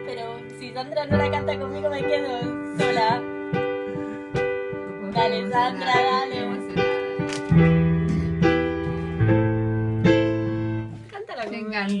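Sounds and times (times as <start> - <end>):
person's voice: 0.0 - 3.2, 4.9 - 7.2
keyboard piano chords: 0.0 - 11.1.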